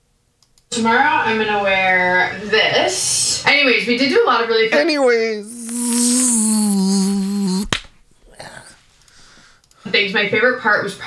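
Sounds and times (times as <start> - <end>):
sharp snap: 7.6 - 7.9.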